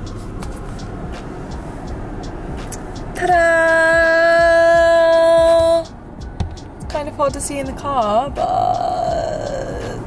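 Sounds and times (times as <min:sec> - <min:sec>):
low hum inside car cabin: 0:00.0 - 0:10.0.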